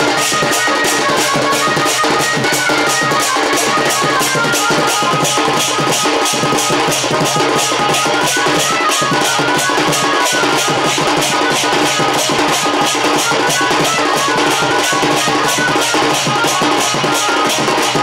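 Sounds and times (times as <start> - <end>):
barrel drum beating: 0.0 - 18.0.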